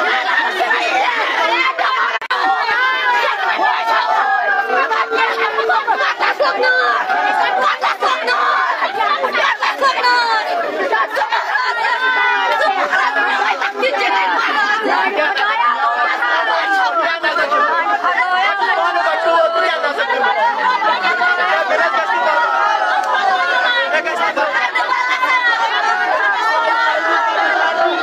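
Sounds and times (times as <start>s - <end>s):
crowd chatter: 0.0s - 28.0s.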